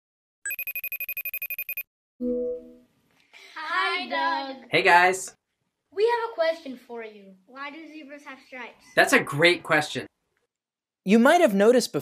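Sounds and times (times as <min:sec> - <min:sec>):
electronic ringtone trill: 0:00.4 - 0:02.7.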